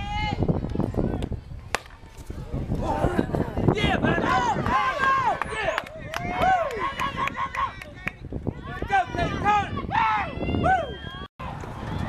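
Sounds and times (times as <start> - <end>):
bat cracking against ball: 1.7 - 2.1.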